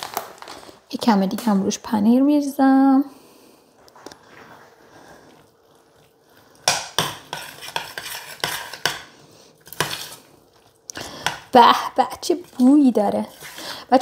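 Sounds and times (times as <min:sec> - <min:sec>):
grated cheese rustling: 0:04.3 - 0:11.6, 0:12.2 - 0:14.0
metal fork scraping pot: 0:07.0 - 0:09.0, 0:12.2 - 0:14.0.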